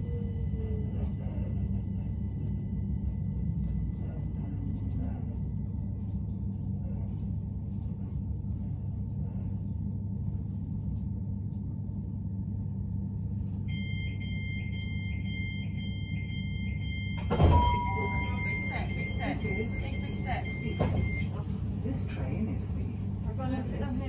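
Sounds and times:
train humming at platform: 0.0s - 24.0s
two-tone train door warning beeps: 13.6s - 21.6s
voices: 17.4s - 24.0s.

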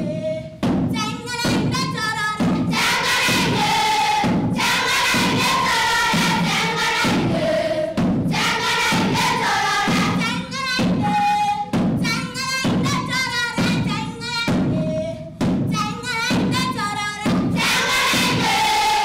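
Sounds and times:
repeated thuds: 0.6s - 19.0s
children's choir singing: 2.4s - 11.8s, 17.1s - 19.0s.

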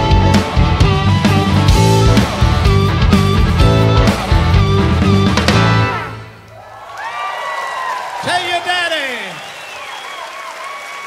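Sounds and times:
audience applauding and cheering: 1.6s - 11.0s
falling whoop: 6.5s - 8.2s.

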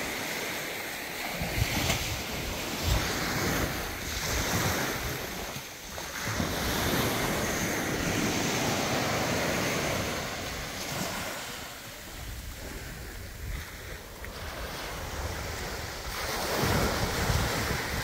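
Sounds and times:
small waves washing onto beach: 0.0s - 18.0s
wind buffeting microphone: 1.3s - 18.0s.

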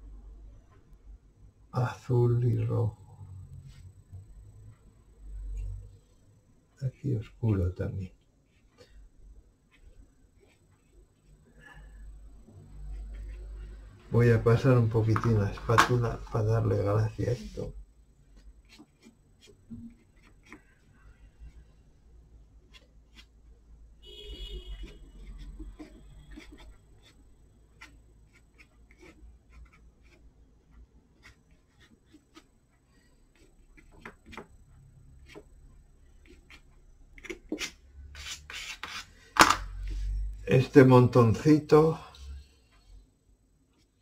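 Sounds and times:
palette knife scraping paper: 24.8s - 30.2s, 36.2s - 39.2s.

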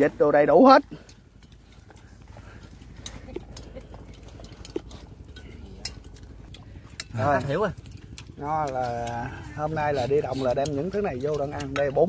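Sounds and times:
faint steady background noise: 0.0s - 12.0s
chopsticks tapping bowls and plates: 10.4s - 12.0s.

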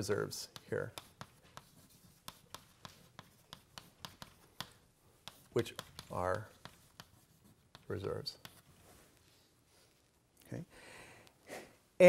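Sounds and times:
chalk tapping on blackboard: 0.2s - 8.7s.

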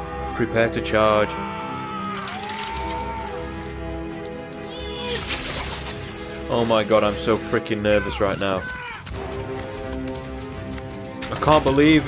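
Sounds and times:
orchestral music: 0.0s - 12.0s.

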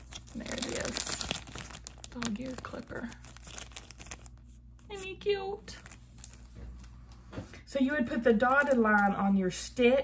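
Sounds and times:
plastic packaging crinkling: 0.0s - 7.2s.

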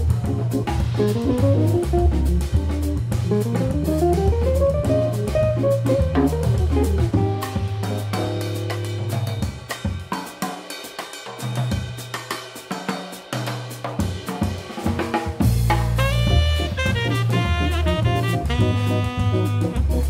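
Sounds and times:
organ bass line: 0.0s - 9.4s, 15.6s - 20.0s
jazz drum kit: 0.0s - 20.0s
guitar: 0.3s - 9.4s
saxophone: 16.0s - 20.0s.

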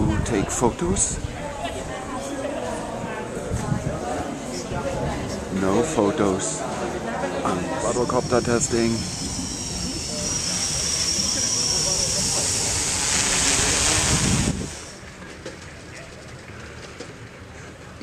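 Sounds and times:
outdoor ambience: 0.0s - 18.0s
drone propellers whirring: 7.4s - 15.0s.

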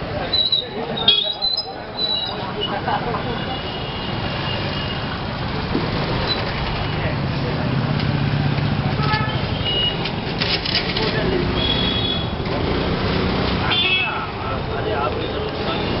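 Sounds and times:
chatter of passers-by: 0.0s - 16.0s
motorbike engines running: 1.6s - 16.0s.

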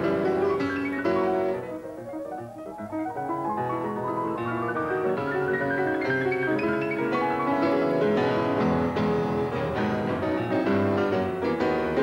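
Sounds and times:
solo piano classical music: 0.0s - 12.0s.

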